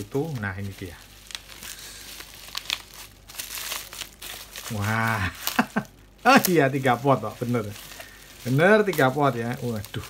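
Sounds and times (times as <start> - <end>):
plastic wrap crinkling: 0.0 - 10.0.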